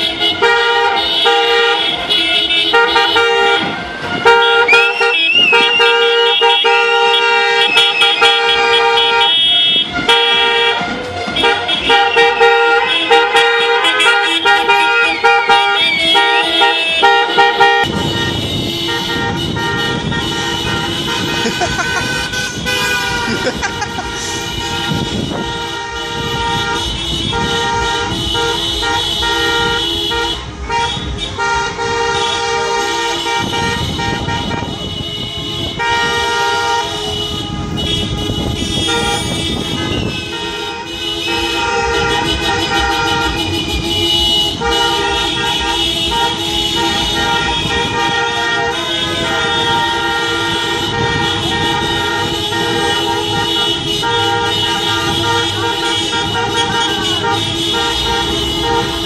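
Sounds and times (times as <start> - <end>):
car engines running: 0.0 - 59.0
car horns honking: 0.0 - 59.0.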